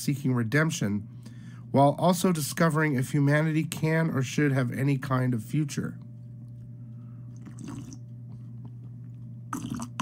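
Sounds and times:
low electrical hum: 0.0 - 10.0
slurping sips from a mug: 7.4 - 8.0, 9.6 - 10.0.

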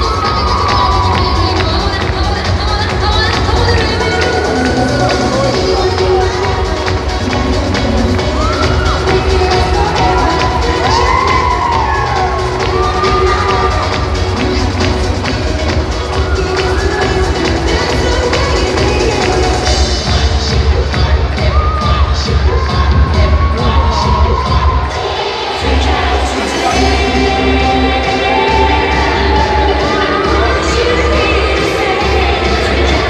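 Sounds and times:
audience cheering: 0.0 - 1.9, 8.2 - 14.4, 28.0 - 31.1
dance music over sound system: 0.0 - 33.0.

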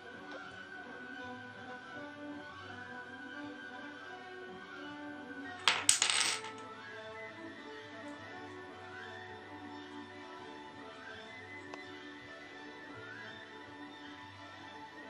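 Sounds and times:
quiet background music: 0.0 - 15.0
wooden blocks clacking: 5.6 - 6.6.

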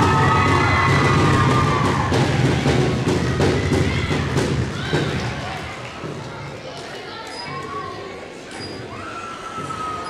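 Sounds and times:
audience clapping and cheering: 0.0 - 6.7.

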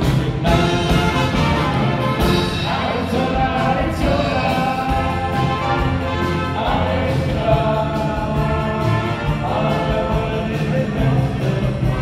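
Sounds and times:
live band playing: 0.0 - 12.0
people singing: 0.0 - 12.0.

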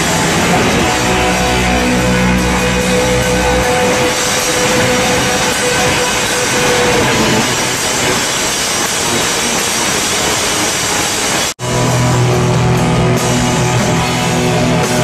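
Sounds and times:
crashing drums and cymbals: 0.0 - 15.0
distorted guitar noise: 0.0 - 15.0
heavy bass: 0.0 - 15.0.

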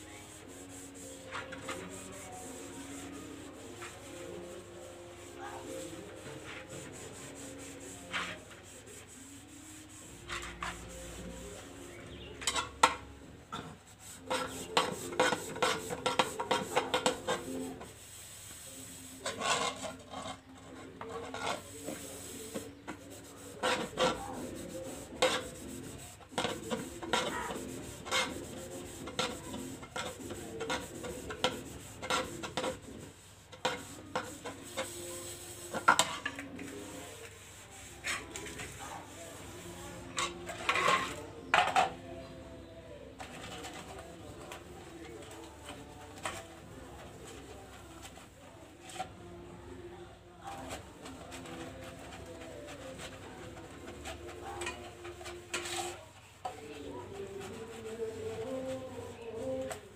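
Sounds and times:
scrubbing metal dishes: 12.4 - 13.6, 14.2 - 17.9, 22.9 - 36.9.

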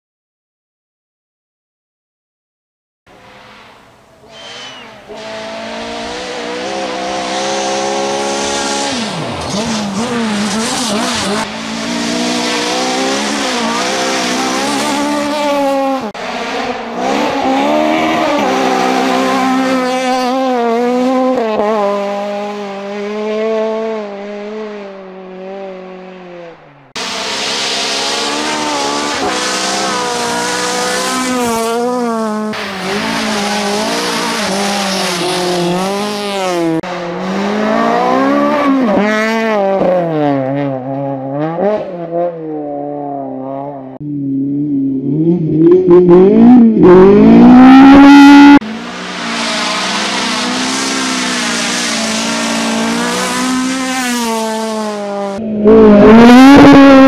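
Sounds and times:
rally car engine revving: 3.1 - 57.0
car sliding on gravel: 48.6 - 54.6.

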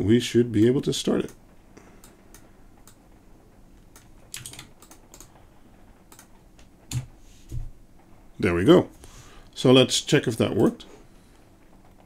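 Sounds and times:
typing on computer keyboard: 4.0 - 5.3.

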